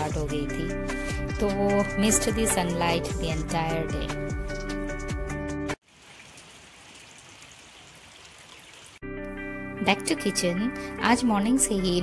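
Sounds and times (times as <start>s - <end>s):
background music: 0.0s - 5.8s, 9.0s - 12.0s
rain on tiles: 5.8s - 9.0s.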